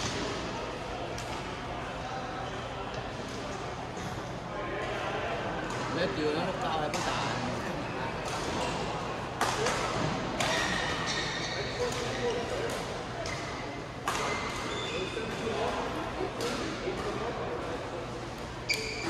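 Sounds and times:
murmur of crowd chatter: 0.0s - 19.0s
short high shoe squeal: 14.3s - 15.2s, 18.7s - 19.0s.

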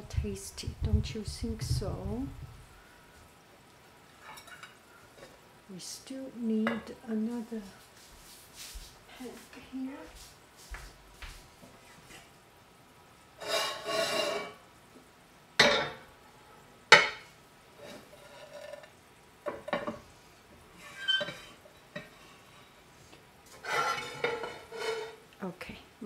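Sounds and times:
metal pan scraping on grate: 13.4s - 14.6s, 17.8s - 18.9s, 20.8s - 22.7s, 23.5s - 25.2s.

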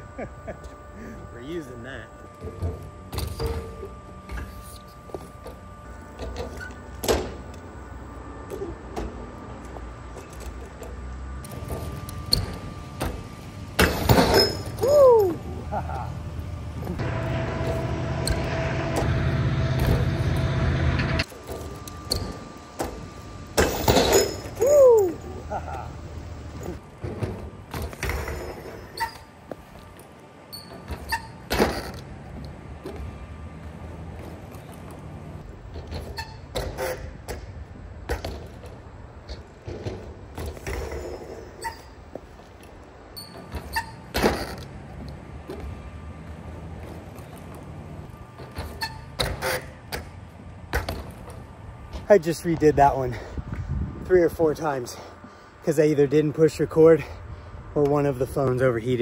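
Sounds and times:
bike tyres rolling: 2.3s - 54.0s
bike landing on ramp: 13.8s - 14.8s, 21.4s - 24.6s, 27.0s - 29.6s, 30.6s - 32.1s, 35.7s - 41.8s, 43.3s - 44.7s
loud steady rumble: 15.2s - 24.1s.

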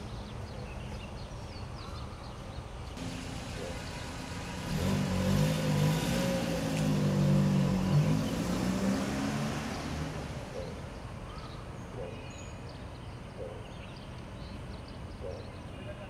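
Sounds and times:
vehicle engine passing by: 3.0s - 11.3s.

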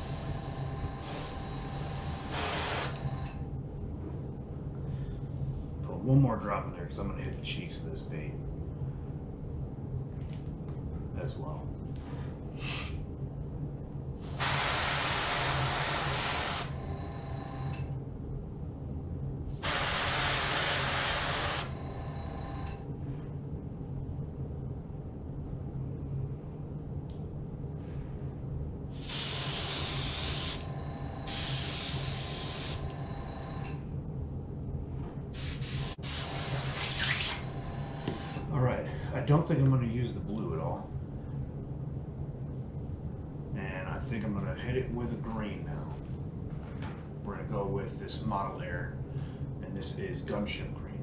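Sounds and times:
steady low hum: 0.0s - 51.0s
airbrush spraying hiss: 1.0s - 3.0s, 14.2s - 16.8s, 19.6s - 21.8s, 29.0s - 33.0s, 35.4s - 37.5s.

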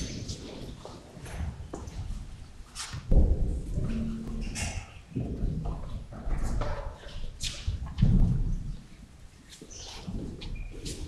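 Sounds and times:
low thumps: 3.1s - 6.6s.

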